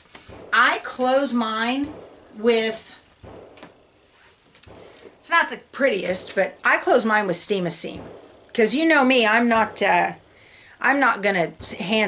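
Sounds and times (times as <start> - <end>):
fabric rustling: 3.6 - 5.2.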